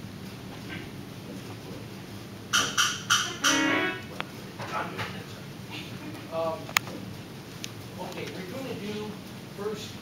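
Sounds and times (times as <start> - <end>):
pipe organ notes: 3.2 - 4.1.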